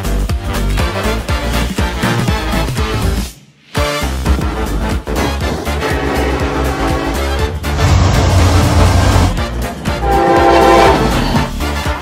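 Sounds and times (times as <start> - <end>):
background music: 0.0 - 12.0
locomotive air horn: 5.5 - 12.0.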